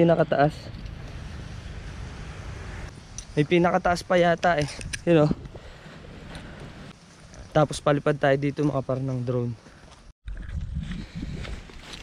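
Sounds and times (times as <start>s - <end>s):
wind buffeting microphone: 0.7s - 6.9s, 10.3s - 12.0s
footsteps on grassy path: 4.2s - 12.0s.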